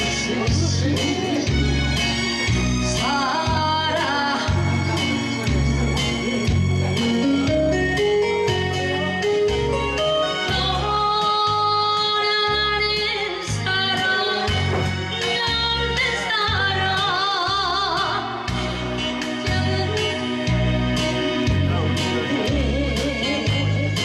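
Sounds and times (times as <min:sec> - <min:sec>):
backing track with bass beat: 0:00.0 - 0:10.8
woman singing with vibrato: 0:02.9 - 0:05.5, 0:10.5 - 0:18.6, 0:19.2 - 0:20.6, 0:22.4 - 0:24.0.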